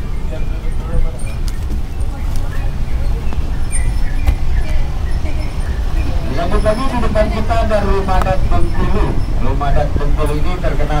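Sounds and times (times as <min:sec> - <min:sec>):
bus engine and road rumble: 0:00.0 - 0:11.0.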